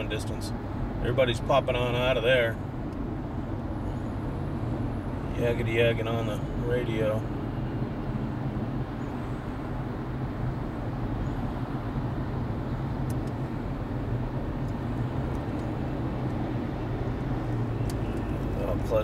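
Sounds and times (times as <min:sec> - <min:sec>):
road and engine noise in cabin: 0:00.0 - 0:19.0.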